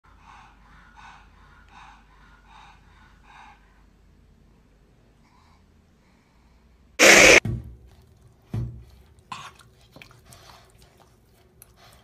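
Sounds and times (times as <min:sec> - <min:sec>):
dog breathing noisily: 0:00.0 - 0:04.1.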